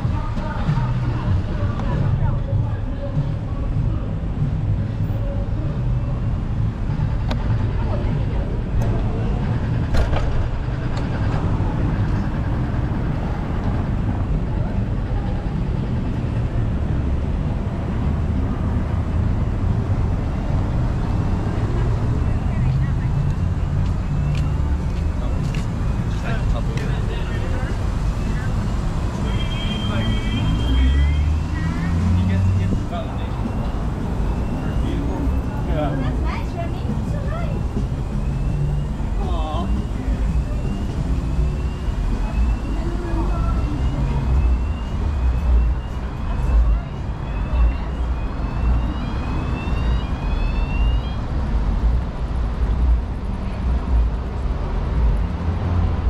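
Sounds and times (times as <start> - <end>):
car traffic: 0.0 - 56.0
people talking on street: 0.0 - 56.0
wind and road noise: 0.0 - 56.0.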